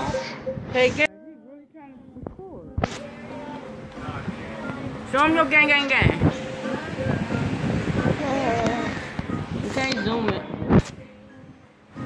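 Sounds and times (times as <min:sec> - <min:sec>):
muffled voices: 0:00.0 - 0:11.6.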